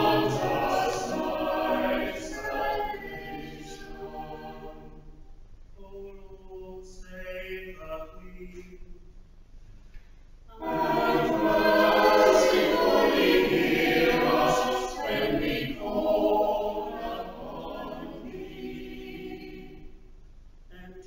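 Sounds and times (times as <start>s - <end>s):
church choir singing: 0.0s - 5.2s, 10.5s - 20.1s.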